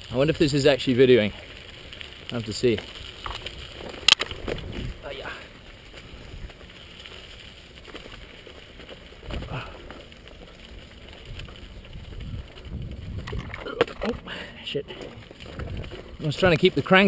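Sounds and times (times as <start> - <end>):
bike rattling and rumbling: 0.0 - 17.0
tyres crunching over dirt and stones: 0.0 - 17.0.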